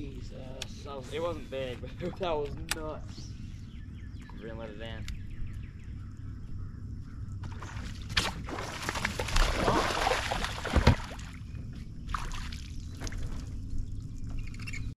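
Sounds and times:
fish thrashing water: 7.4 - 11.4, 12.1 - 13.6.

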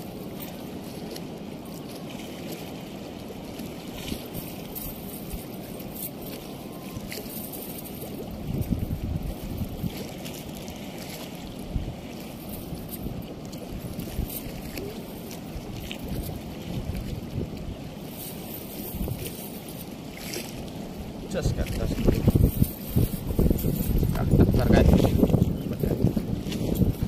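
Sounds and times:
rushing water: 0.0 - 27.0
wind buffeting microphone: 3.1 - 27.0.

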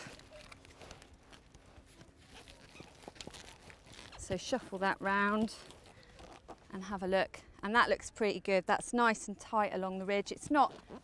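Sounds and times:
canvas and strap rustling: 0.0 - 7.1, 9.9 - 11.0.

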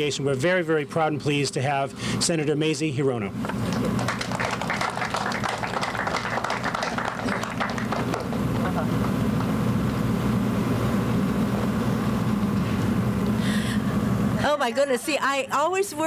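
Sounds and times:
audience applauding: 3.5 - 9.2.

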